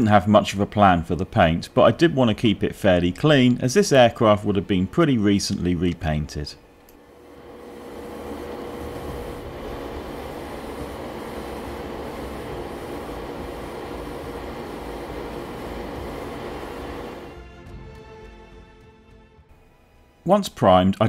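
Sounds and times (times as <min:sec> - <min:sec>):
faint steady hum: 0:00.0 - 0:17.3
airbrush spraying hiss: 0:07.6 - 0:17.3.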